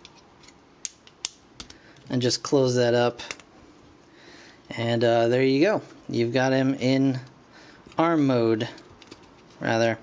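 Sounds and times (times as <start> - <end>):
plastic toy parts handled: 8.8 - 9.7.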